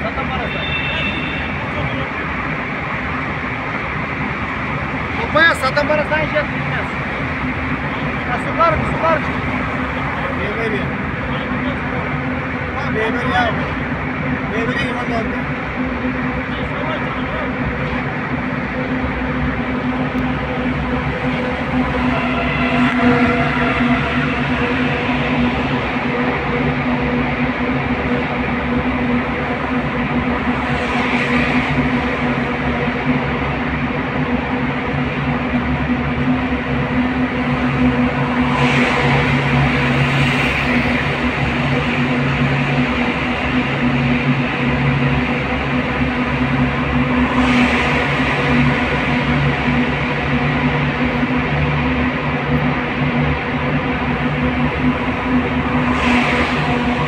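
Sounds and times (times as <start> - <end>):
engine and tyre drone: 0.0 - 57.0
passing vehicles hiss: 0.0 - 57.0.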